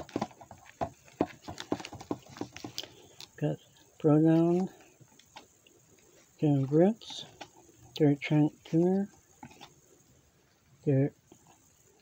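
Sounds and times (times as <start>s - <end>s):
trading cards tapping and snapping: 0.0s - 3.4s.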